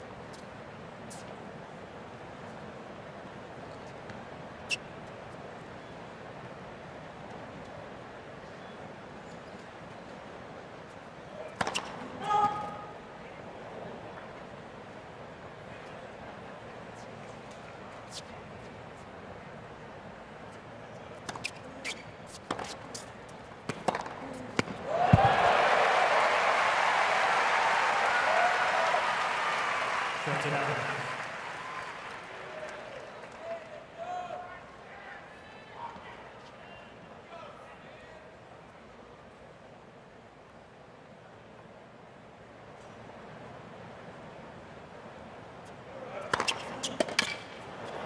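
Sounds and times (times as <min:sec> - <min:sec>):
tennis ball bounces: 0:11.5 - 0:12.0, 0:21.2 - 0:25.4, 0:46.2 - 0:48.0
tennis racquet strikes: 0:11.5 - 0:12.0, 0:21.2 - 0:25.3, 0:46.2 - 0:48.0
crowd applause and cheers: 0:24.8 - 0:33.4.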